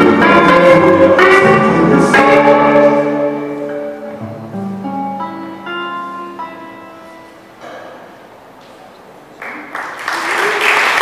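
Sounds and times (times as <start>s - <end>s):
electric guitar: 0.0s - 7.5s.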